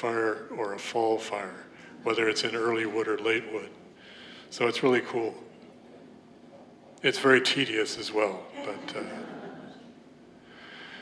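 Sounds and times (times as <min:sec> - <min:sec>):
faint room noise: 0:00.0 - 0:11.0
soft breath: 0:03.9 - 0:04.5, 0:10.4 - 0:11.0
man saying uh: 0:07.1 - 0:09.3.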